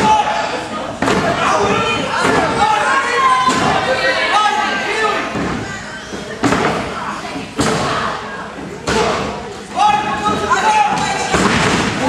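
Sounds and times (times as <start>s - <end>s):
people shouting: 0.0s - 5.6s, 8.9s - 12.0s.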